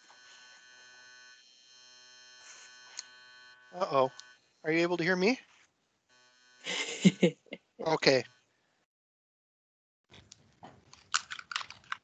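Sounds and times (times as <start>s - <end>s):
faint electrical buzz: 0.0s - 8.4s.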